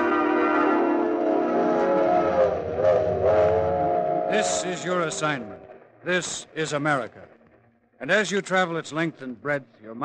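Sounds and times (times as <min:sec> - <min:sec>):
orchestral brass chord: 0:00.0 - 0:05.2.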